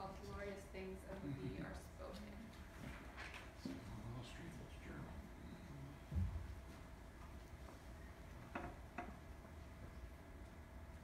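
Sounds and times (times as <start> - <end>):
quiet room hum: 0.0 - 11.0.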